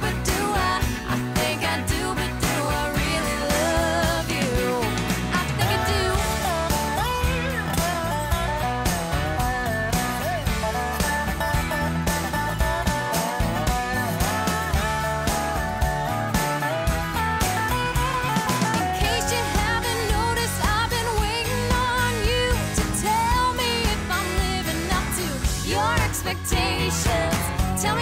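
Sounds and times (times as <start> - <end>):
lead guitar bending notes: 0.0 - 24.8
bass guitar: 0.0 - 28.0
rhythm guitar: 0.0 - 28.0.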